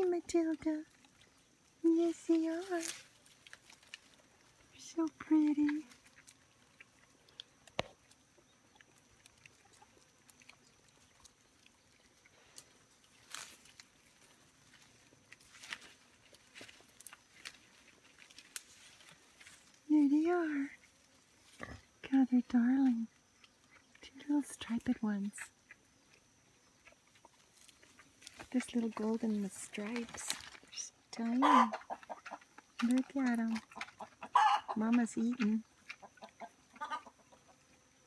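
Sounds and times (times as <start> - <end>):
sow feeding clicks: 26.8 - 37.2.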